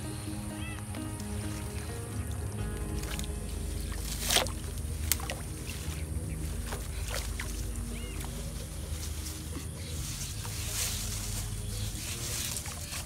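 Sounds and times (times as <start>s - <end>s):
background music: 0.0s - 13.0s
steady low rumble: 0.0s - 13.0s
water sloshing and splashing: 0.0s - 13.0s.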